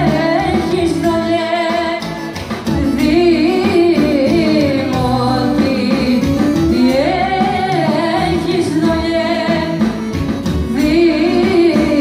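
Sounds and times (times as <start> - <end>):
band accompaniment: 0.0 - 12.0
singer's ornamented melody: 0.0 - 12.0.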